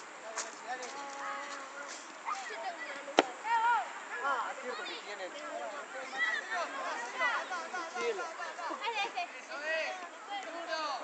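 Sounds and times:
children calling: 0:00.9 - 0:11.0
child shouting: 0:02.2 - 0:05.0.

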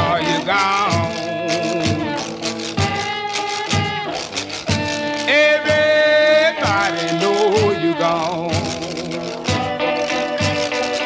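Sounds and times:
blues band playing: 0:00.0 - 0:11.0.

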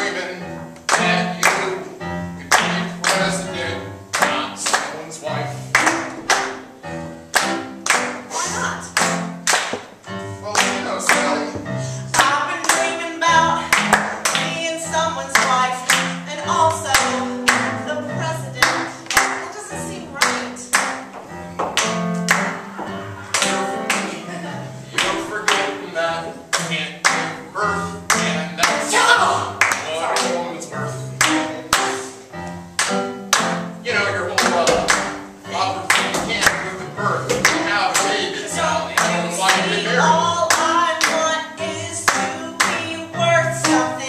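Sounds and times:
voices singing with instruments: 0:22.8 - 0:32.1, 0:33.8 - 0:44.0.

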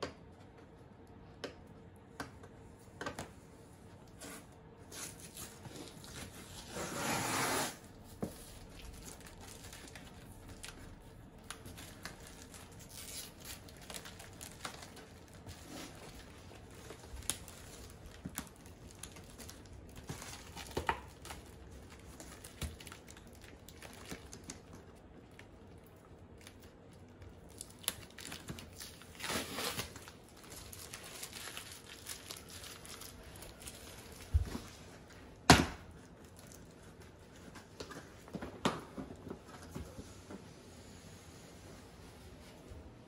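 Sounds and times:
cardboard rustling and crinkling: 0:04.1 - 0:24.8, 0:27.5 - 0:35.3.

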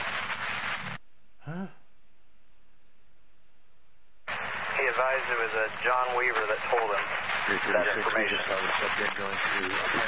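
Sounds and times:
radio hiss: 0:04.3 - 0:10.0.

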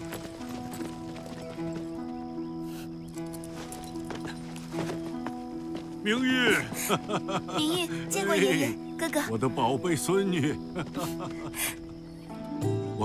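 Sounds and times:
horses' hooves clip-clopping on dirt: 0:00.0 - 0:06.1
music of long held chords: 0:00.0 - 0:13.0.

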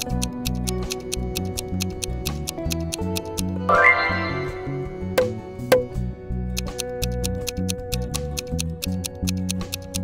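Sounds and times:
clock-like ticking: 0:00.0 - 0:03.6, 0:06.6 - 0:10.0
background music with steady beat: 0:00.0 - 0:10.0
bright chime sound effect: 0:03.7 - 0:04.8.

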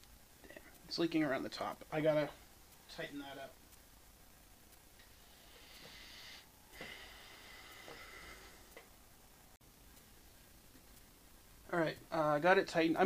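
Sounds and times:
faint air hiss: 0:00.0 - 0:13.0.

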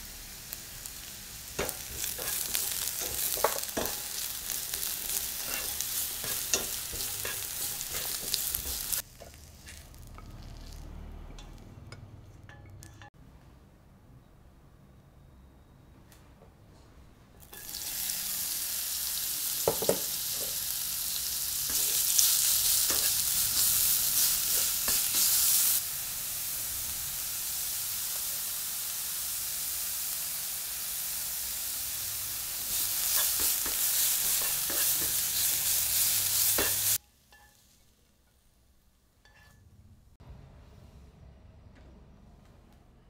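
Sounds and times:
food sizzling in oil: 0:00.0 - 0:11.6, 0:17.4 - 0:37.9.

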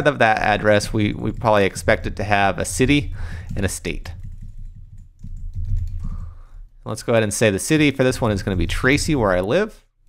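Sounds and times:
computer keyboard typing: 0:00.6 - 0:06.6.

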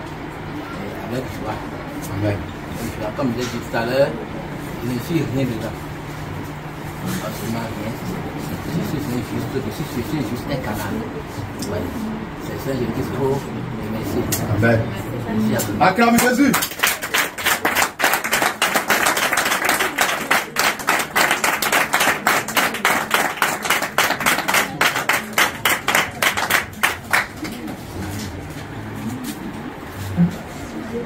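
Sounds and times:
low murmuring voices: 0:00.0 - 0:31.0
people clapping in rhythm: 0:16.0 - 0:29.4.

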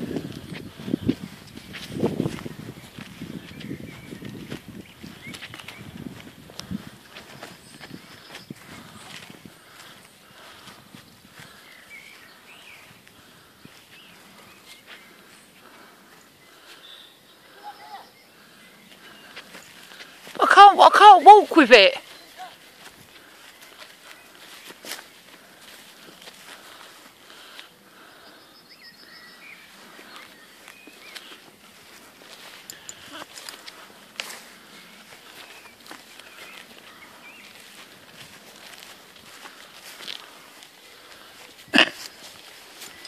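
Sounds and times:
footsteps through grass: 0:00.0 - 0:43.0.

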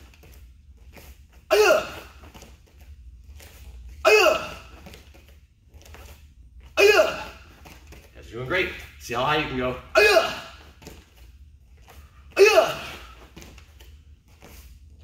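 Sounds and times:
man shouting: 0:04.1 - 0:04.6, 0:06.8 - 0:07.4, 0:09.2 - 0:10.6, 0:12.4 - 0:13.1.

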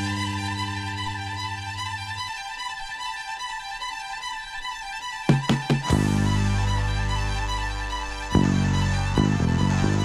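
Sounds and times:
bowed strings holding chord: 0:00.0 - 0:10.0.

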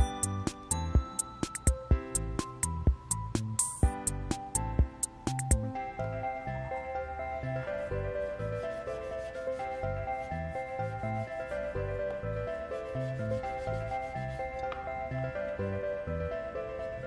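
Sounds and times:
gentle background music: 0:00.0 - 0:17.0.

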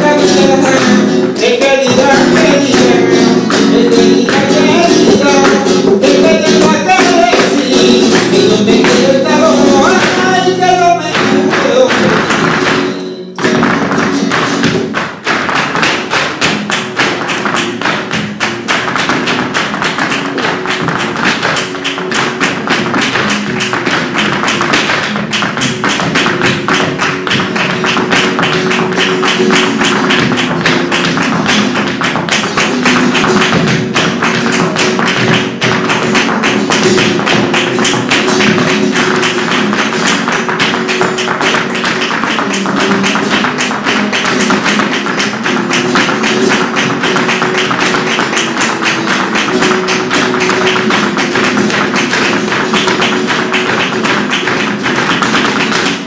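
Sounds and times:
flamenco guitar: 0:00.0 - 0:56.0
hand-clapping: 0:00.0 - 0:56.0
heeled shoes striking stage floor: 0:00.0 - 0:56.0.

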